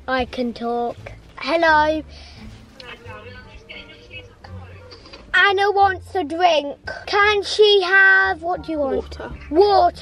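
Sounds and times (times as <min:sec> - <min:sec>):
woman talking through phone speaker: 0:02.8 - 0:04.9.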